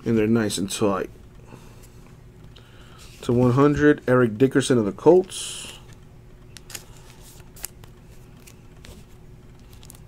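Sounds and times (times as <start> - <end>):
low steady hum: 0.0 - 10.0
trading cards clicking and rustling: 5.1 - 10.0.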